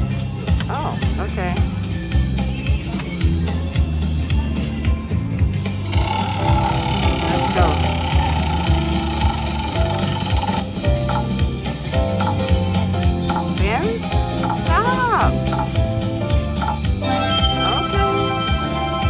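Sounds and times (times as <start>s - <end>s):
steady bass line: 0.0s - 19.0s
slot machine music and effects: 5.9s - 11.3s, 16.6s - 19.0s.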